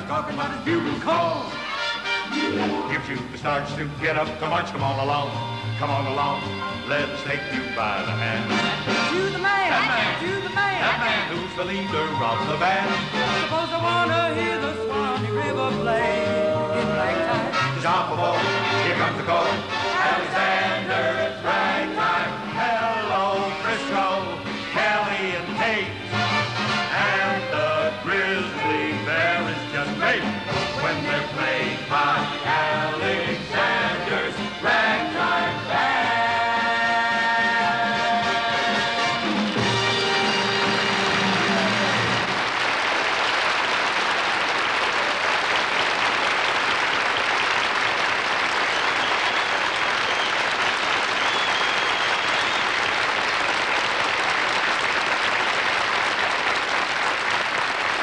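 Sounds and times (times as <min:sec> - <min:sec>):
band playing ragtime song: 0:00.0 - 0:42.5
audience applause: 0:39.6 - 0:58.0.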